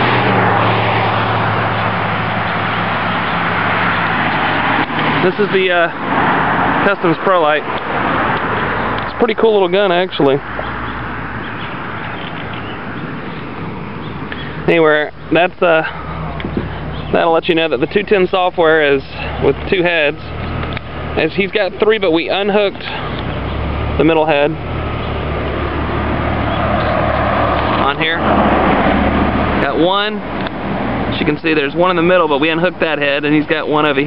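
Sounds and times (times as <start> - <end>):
car engine idling: 0.0 - 34.0
steady outdoor hiss: 0.0 - 34.0
traffic noise: 0.0 - 34.0.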